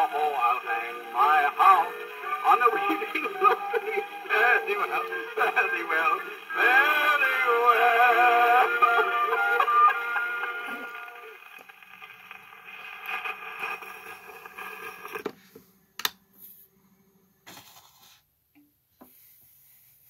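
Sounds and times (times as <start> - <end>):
man singing with dance band: 0.0 - 9.8
record noise: 0.0 - 18.1.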